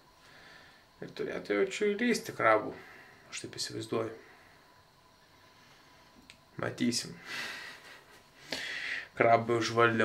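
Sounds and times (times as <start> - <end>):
man exhaling: 7.2 - 9.1.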